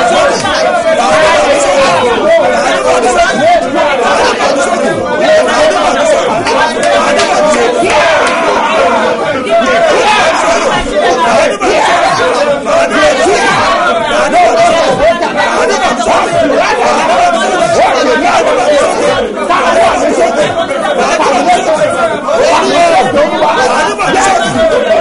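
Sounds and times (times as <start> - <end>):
man praying aloud: 0.0 - 25.0.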